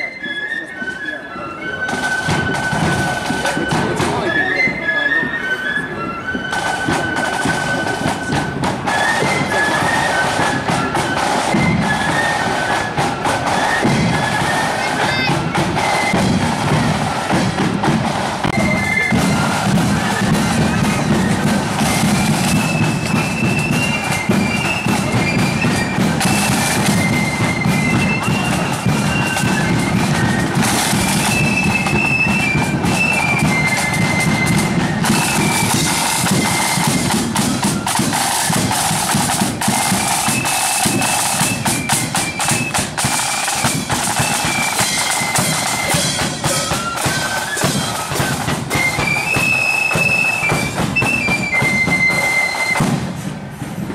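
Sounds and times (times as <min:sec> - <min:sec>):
flutes playing melody: 0:00.0 - 0:53.6
snare drum rolls: 0:01.9 - 0:04.4, 0:06.4 - 0:53.9.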